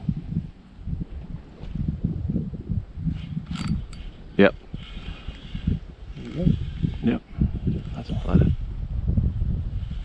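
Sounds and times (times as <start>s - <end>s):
fishing reel cranking: 3.4s - 4.1s.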